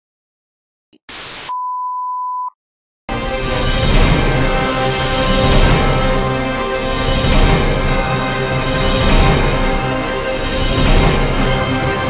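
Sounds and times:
test-tone beep: 1.5s - 2.6s.

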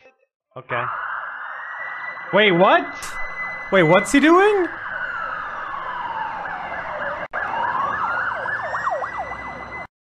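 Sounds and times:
siren-like wailing: 0.6s - 9.9s.

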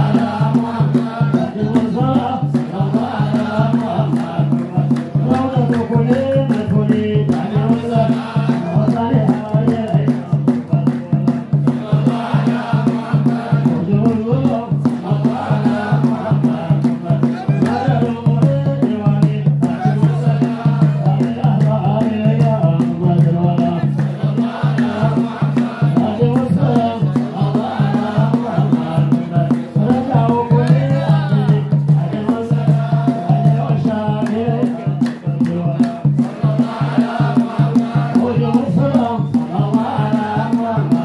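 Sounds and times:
men chanting together: 0.0s - 41.0s
steady low beat: 0.0s - 41.0s
hand-clapping: 3.3s - 11.1s, 23.2s - 27.3s, 34.2s - 38.0s.

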